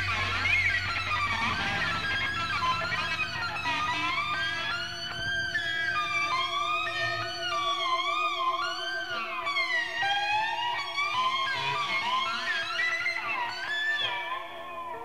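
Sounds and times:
electric guitar bending pitches: 0:00.0 - 0:15.0
wavering drone: 0:00.0 - 0:15.0.

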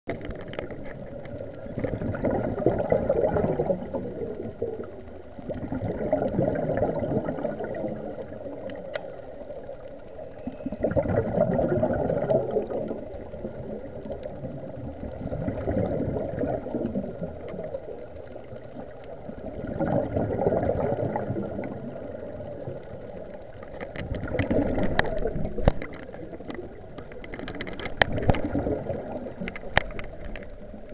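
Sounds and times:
regulator air bubbling underwater: 0:00.1 - 0:30.9.

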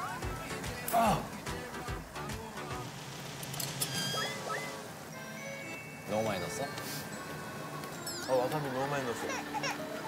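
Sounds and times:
quiet background music: 0:00.0 - 0:10.0
high squeaky chirps: 0:03.8 - 0:04.9.

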